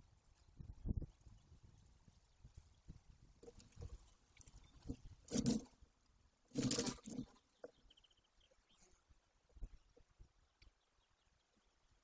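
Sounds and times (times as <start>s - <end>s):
scraping rustle against camera: 3.4s - 5.8s, 6.5s - 7.5s.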